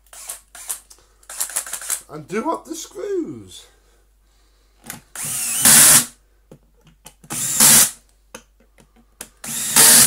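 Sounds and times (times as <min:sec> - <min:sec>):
screws clicking and rattling: 0:00.1 - 0:02.0.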